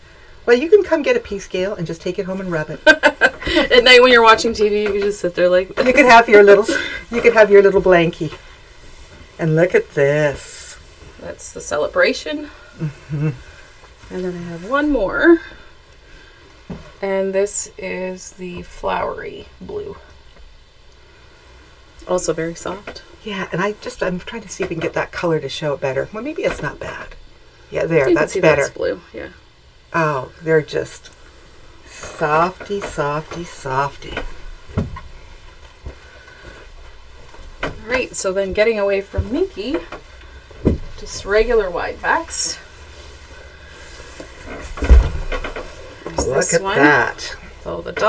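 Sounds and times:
faint steady low hum: 0:00.0 - 0:48.0
fabric rustling: 0:00.8 - 0:17.0, 0:31.3 - 0:47.8.

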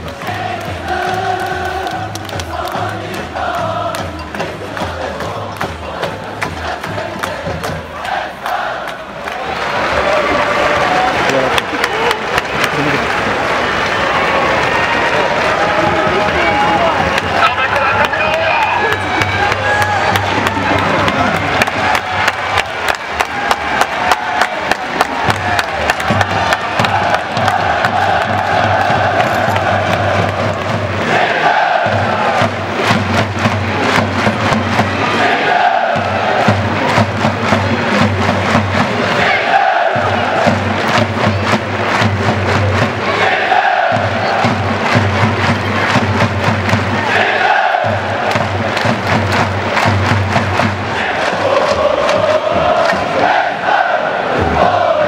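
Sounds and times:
steady rhythmic beat: 0:00.0 - 0:09.2, 0:15.4 - 0:55.0
football supporters chanting: 0:00.0 - 0:12.4, 0:13.0 - 0:55.0.

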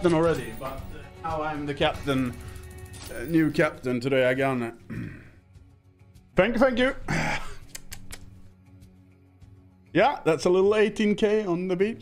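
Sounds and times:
quiet background music: 0:00.0 - 0:12.0
sharp clicks: 0:07.6 - 0:08.4.

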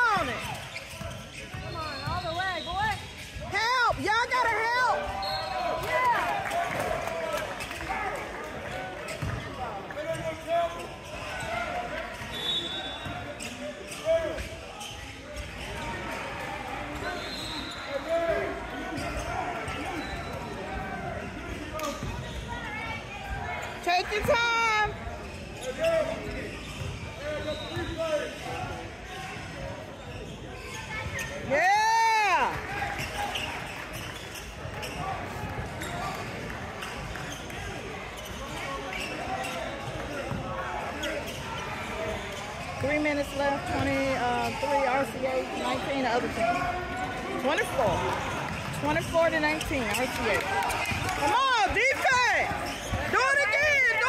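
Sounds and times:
echoing spectator chatter: 0:00.0 - 0:54.0.

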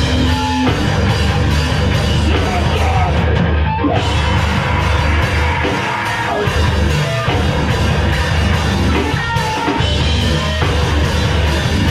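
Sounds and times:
distorted electric guitar: 0:00.0 - 0:11.9
drum kit: 0:00.0 - 0:11.9.

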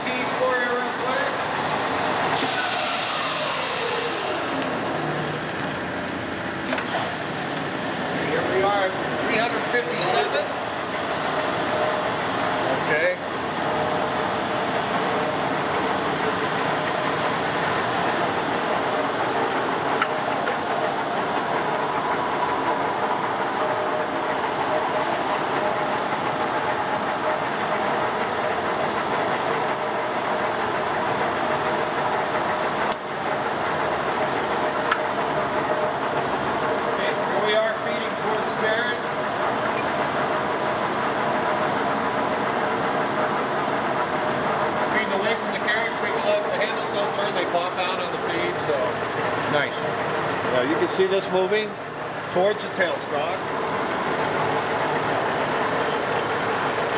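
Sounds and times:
lathe motor humming: 0:00.0 - 0:56.9.

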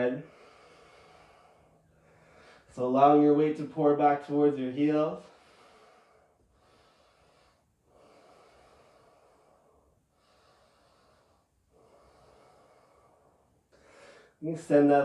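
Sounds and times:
faint slow breathing: 0:00.0 - 0:02.8, 0:05.1 - 0:14.4.

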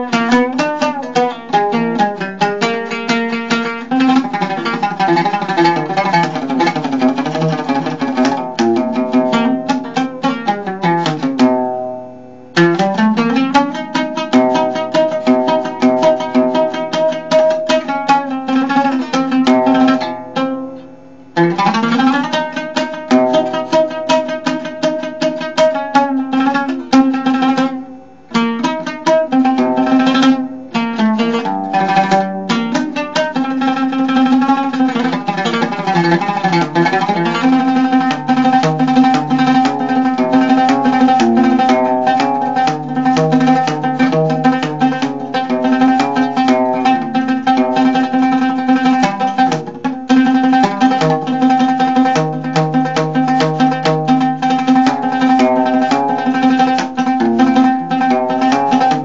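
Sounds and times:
oud played with plectrum: 0:00.0 - 0:59.0.

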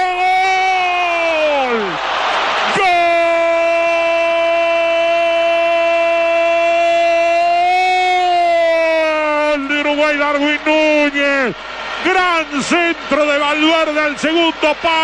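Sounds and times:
commentator shouting goal cry: 0:00.0 - 0:15.0.

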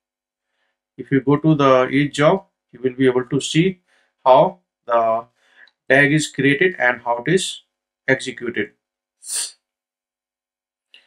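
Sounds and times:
man's short breath intake: 0:05.4 - 0:05.7.

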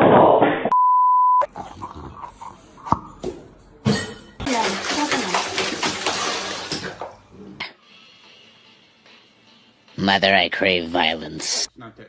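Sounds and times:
censor bleep: 0:00.7 - 0:01.4.

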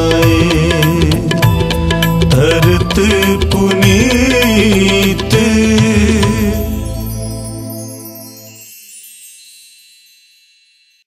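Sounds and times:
high chime-like ringing tones: 0:06.4 - 0:11.0.

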